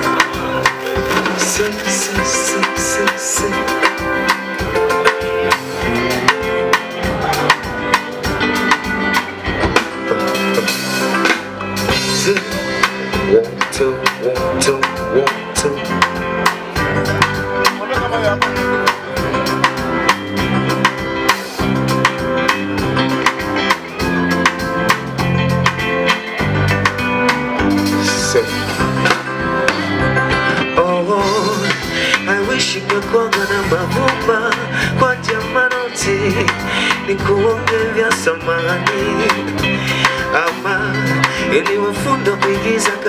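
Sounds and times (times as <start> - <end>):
drum kit beat: 0.0 - 43.0
electric guitar: 0.0 - 43.0
live band playing: 0.0 - 43.0.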